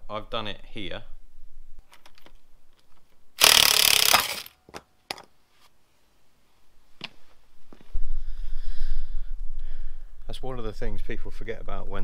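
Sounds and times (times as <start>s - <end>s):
cordless impact gun running: 3.4s - 4.5s
sharp clicks: 3.4s - 4.5s.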